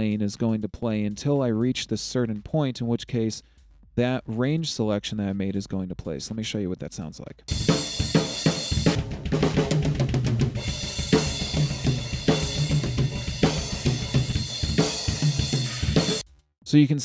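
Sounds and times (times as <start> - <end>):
snare drum: 7.5 - 16.4.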